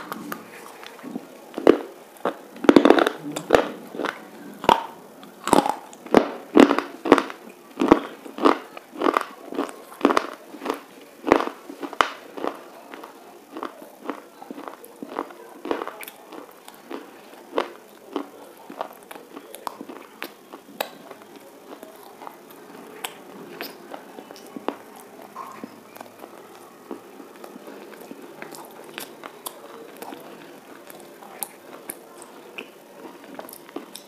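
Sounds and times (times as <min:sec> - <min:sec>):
crunching of hard bar being chewed: 0:00.0 - 0:34.0.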